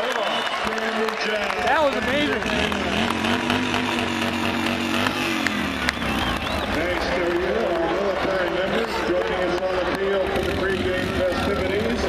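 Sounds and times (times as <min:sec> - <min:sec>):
motorcycle engine running: 0:01.3 - 0:12.0.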